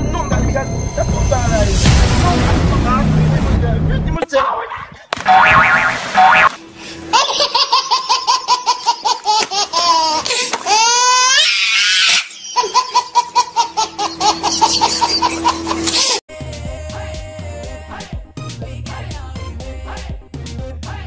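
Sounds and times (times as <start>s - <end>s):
water splash: 5.2s - 6.7s
baby laughing: 7.1s - 16.2s.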